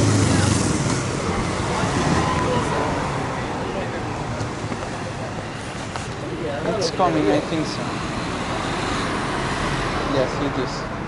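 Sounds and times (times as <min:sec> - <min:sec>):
city street traffic rumble: 0:00.0 - 0:11.0.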